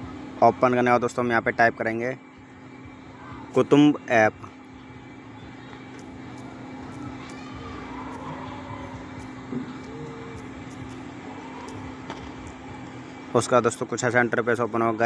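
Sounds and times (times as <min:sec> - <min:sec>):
constant low hum: 0:00.0 - 0:15.0
faint distant sounds: 0:00.0 - 0:15.0.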